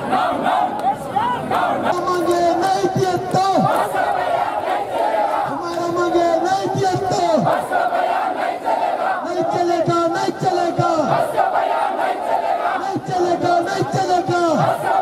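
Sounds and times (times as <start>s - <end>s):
crowd din: 0.0s - 15.0s.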